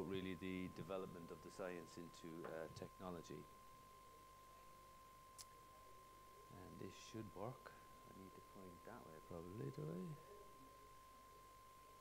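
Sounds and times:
faint steady whine: 0.0s - 12.0s.

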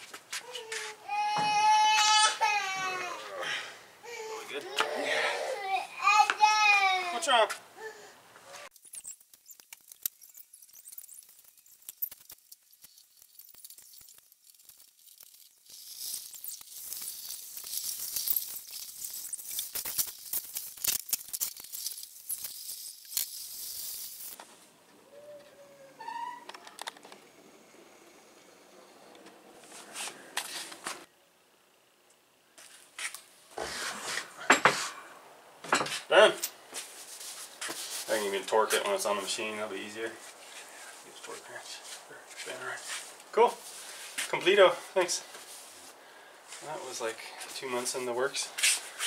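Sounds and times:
rubbing or hissing noise: 8.4s - 24.4s, 32.6s - 35.0s, 36.8s - 38.9s, 40.2s - 44.4s, 47.7s - 49.0s
metal parts clicking and knocking: 8.8s - 24.4s.

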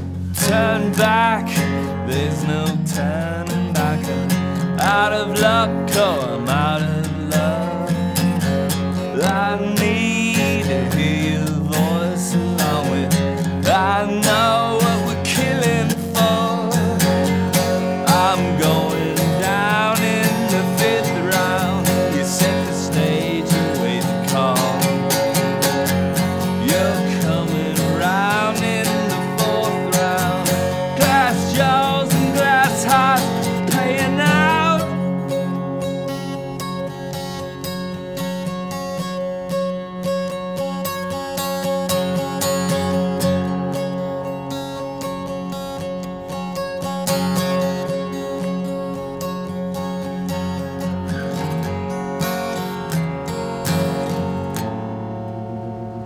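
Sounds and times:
acoustic guitar strumming: 0.0s - 56.0s
man singing: 0.3s - 35.8s.

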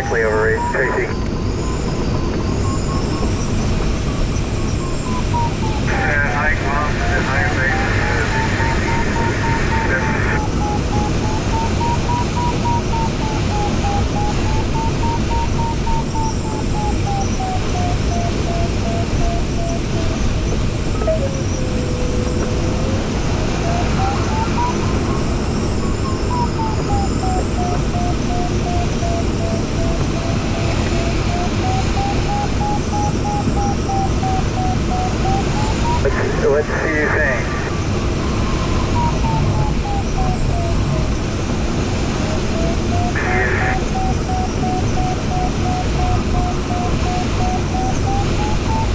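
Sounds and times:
steady airflow noise: 0.0s - 48.9s
variometer beeping: 0.0s - 48.9s.

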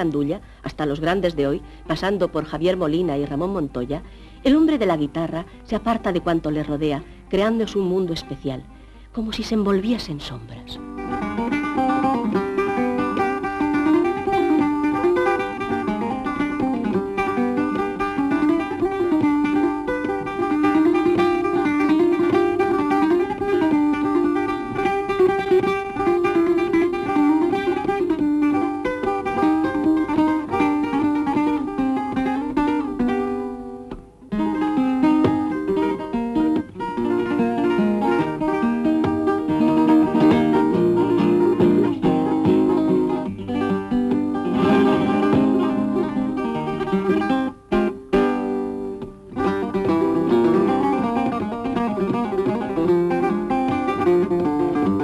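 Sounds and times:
solo flamenco guitar: 0.0s - 55.0s.

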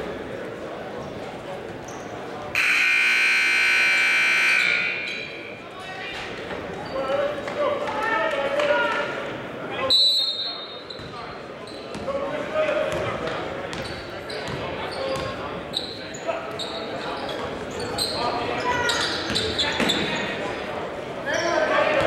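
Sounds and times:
scoreboard buzzer blast: 2.6s - 5.3s.

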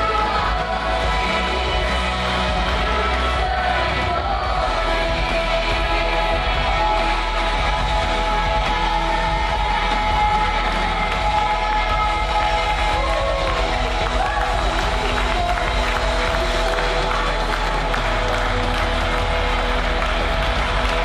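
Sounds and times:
band holding sustained chords: 0.0s - 21.0s
congregation applauding and cheering: 0.0s - 21.0s
person singing: 0.0s - 21.0s.

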